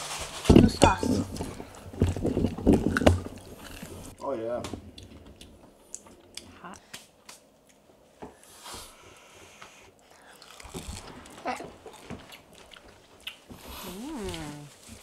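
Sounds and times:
wet chewing mouth sounds: 0:01.3 - 0:04.2, 0:10.0 - 0:15.0
crunching fried food: 0:10.2 - 0:13.8.

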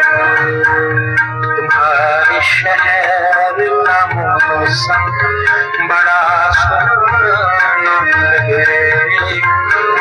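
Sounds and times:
harmonium: 0:00.0 - 0:10.0.

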